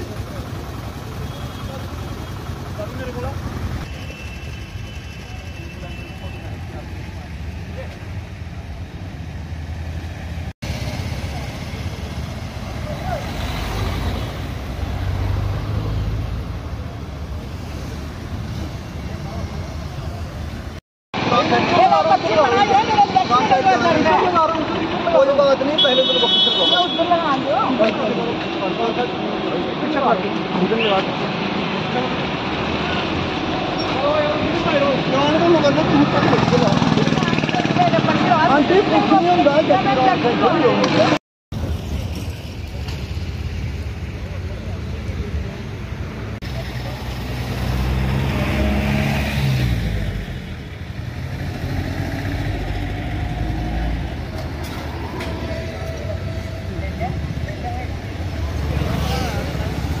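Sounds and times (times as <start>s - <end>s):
traffic engines: 0.0s - 60.0s
car driving past: 46.6s - 56.7s.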